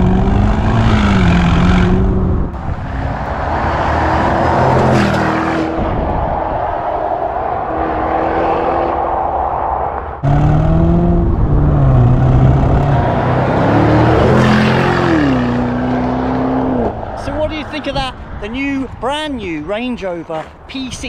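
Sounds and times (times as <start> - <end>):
car engine revving through exhaust: 0.0 - 6.0, 10.2 - 17.0.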